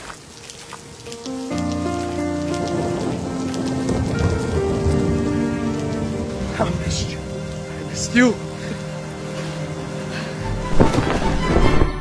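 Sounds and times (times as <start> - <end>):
heavy rain pouring: 0.0 - 12.0
sustained music chords: 1.1 - 12.0.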